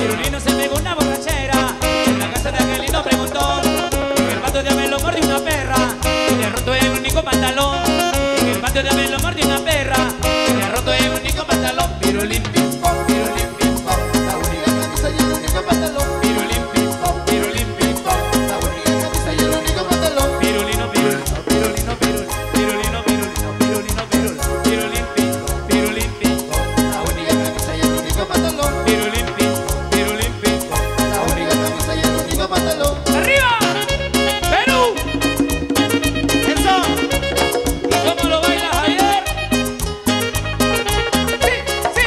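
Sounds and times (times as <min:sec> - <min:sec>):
bass line: 0:00.0 - 0:42.0
latin dance band playing: 0:00.0 - 0:42.0
timbales and congas beat: 0:00.0 - 0:42.0
sustained melody instruments: 0:12.8 - 0:42.0.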